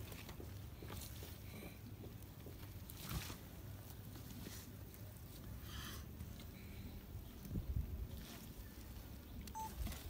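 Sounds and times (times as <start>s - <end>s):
scuffing and pulling sounds: 0.0s - 5.4s
brief high tone: 9.6s - 9.8s.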